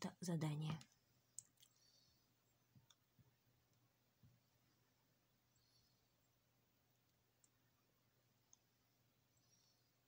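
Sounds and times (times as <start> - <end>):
faint clicks: 0.7 - 1.9, 2.7 - 4.4, 5.5 - 7.7, 8.4 - 8.7.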